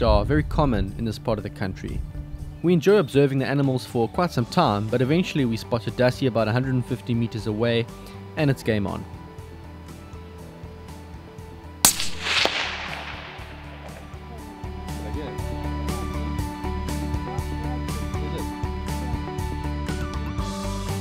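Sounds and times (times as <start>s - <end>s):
background music: 0.0s - 21.0s
rifle shot with echo: 11.9s - 14.8s.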